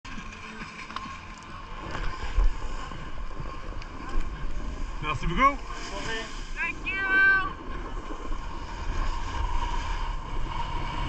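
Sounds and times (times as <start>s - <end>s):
skis scraping on snow: 0.1s - 11.0s.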